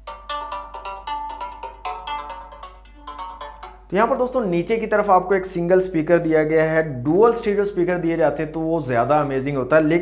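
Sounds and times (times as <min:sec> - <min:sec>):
phone ringtone chiming melody: 0:00.0 - 0:03.9.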